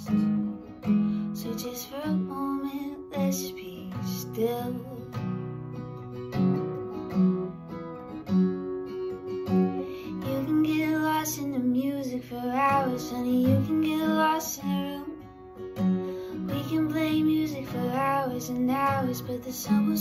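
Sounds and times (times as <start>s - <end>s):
acoustic guitar strummed: 0.0s - 20.0s.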